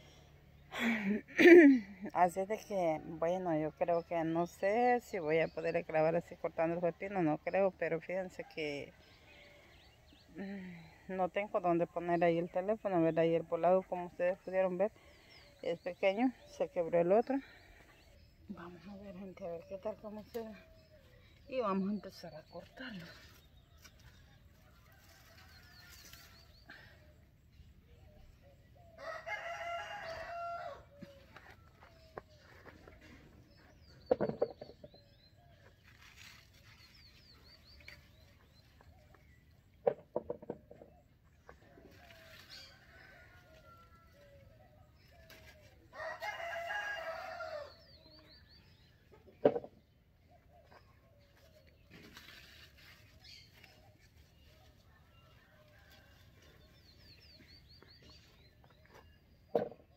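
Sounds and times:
rooster crowing: 29.0s - 30.8s, 45.9s - 47.8s.

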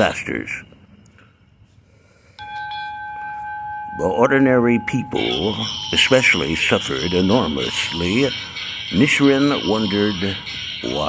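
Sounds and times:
steady bell-like ringing tone: 0.0s - 11.0s.

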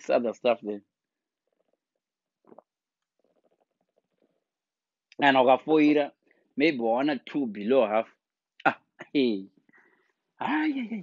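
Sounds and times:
man sipping and swallowing drink: 1.4s - 4.6s.

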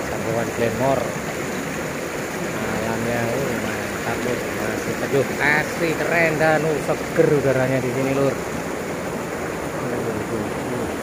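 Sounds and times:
river flowing: 0.0s - 11.0s.

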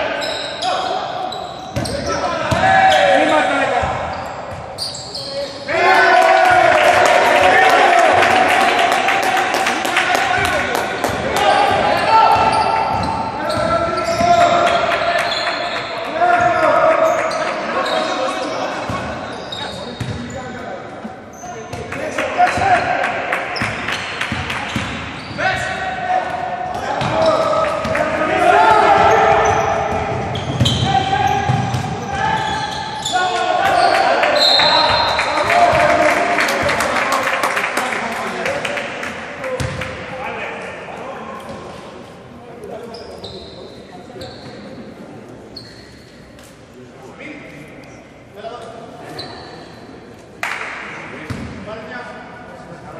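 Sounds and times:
players shouting in a hall: 5.1s - 19.1s, 25.4s - 38.8s.

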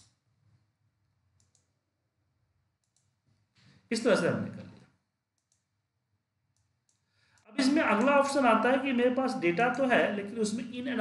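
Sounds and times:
faint computer mouse clicks: 1.4s - 1.7s, 2.8s - 3.2s, 4.7s - 5.7s, 6.5s - 8.1s.

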